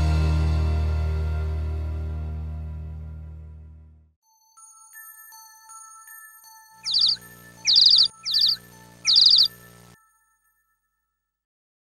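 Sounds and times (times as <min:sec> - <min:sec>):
songbird chirping: 0:06.8 - 0:10.0.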